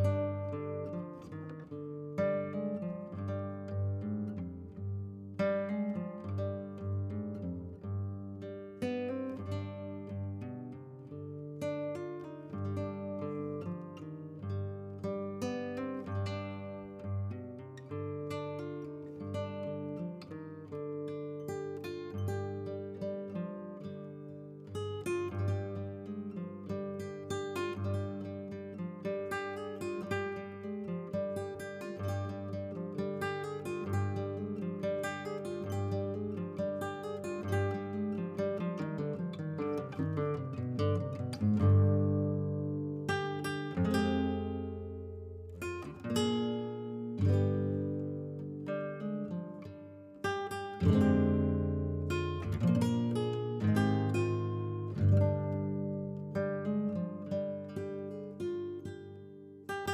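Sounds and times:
acoustic guitar music: 0:00.0 - 0:59.9.

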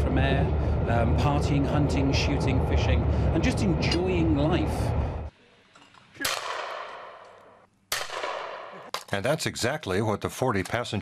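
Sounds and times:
shotgun shots: 0:07.9 - 0:08.9.

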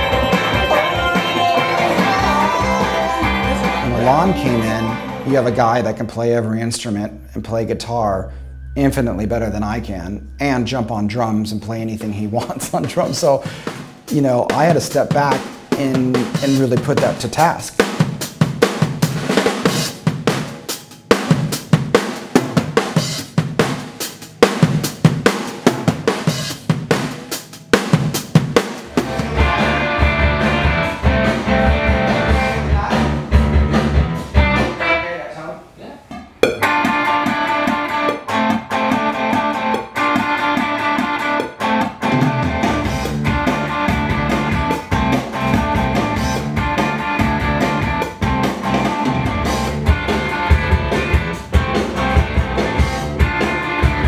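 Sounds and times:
electric guitar: 0:00.0 - 0:06.2, 0:28.8 - 0:35.2, 0:36.4 - 0:54.0
rock drum kit: 0:00.0 - 0:06.3, 0:12.0 - 0:35.0, 0:36.2 - 0:54.0
bass guitar: 0:00.0 - 0:17.9, 0:28.8 - 0:35.2, 0:36.2 - 0:54.0.

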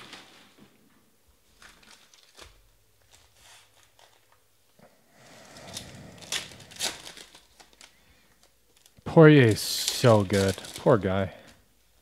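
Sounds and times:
foil wrapper crinkling and tearing: 0:01.5 - 0:04.4, 0:05.5 - 0:11.6.

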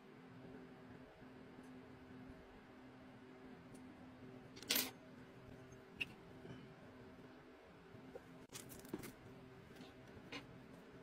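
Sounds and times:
small metal parts scraping: 0:04.6 - 0:05.0.

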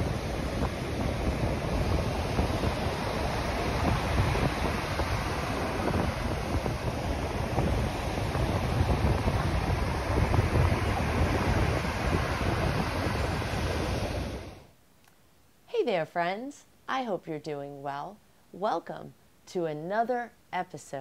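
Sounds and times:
surf breaking on beach: 0:00.0 - 0:14.6
wind buffeting microphone: 0:00.0 - 0:14.7.

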